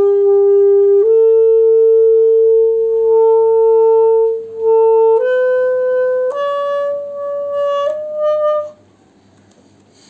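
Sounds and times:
saxophone holding long note: 0:00.0 - 0:08.9.

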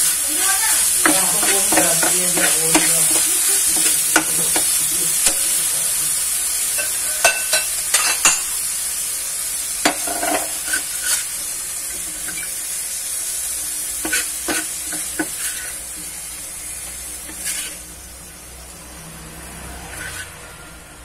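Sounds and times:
metal utensil scraping pan: 0:00.0 - 0:05.7, 0:06.7 - 0:08.5, 0:09.8 - 0:12.6, 0:13.9 - 0:16.1, 0:16.8 - 0:18.0, 0:19.8 - 0:20.4
food sizzling in frying pan: 0:00.0 - 0:21.0.

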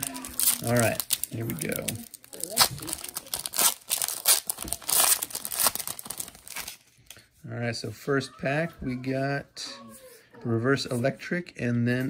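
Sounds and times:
foil wrapper crinkling and tearing: 0:00.0 - 0:07.2.

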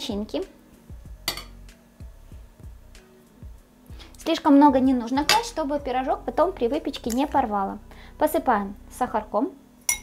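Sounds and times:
soft music with bass: 0:00.0 - 0:10.0.

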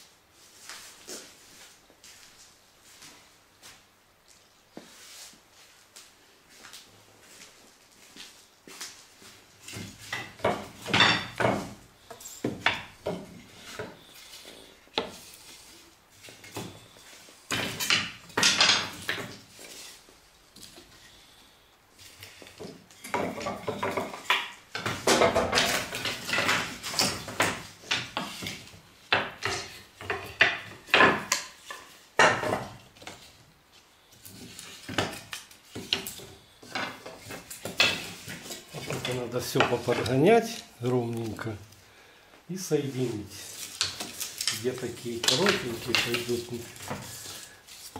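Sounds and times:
wood knocking and clattering on wood: 0:09.6 - 0:14.0, 0:17.5 - 0:19.8, 0:22.2 - 0:33.3, 0:34.2 - 0:40.6, 0:43.6 - 0:47.2.

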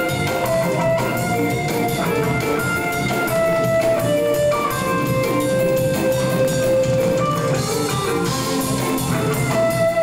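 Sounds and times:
drum kit playing: 0:00.0 - 0:10.0.

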